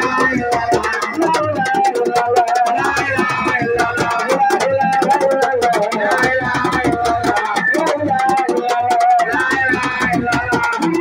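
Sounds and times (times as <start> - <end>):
percussion beat: 0.0 - 11.0.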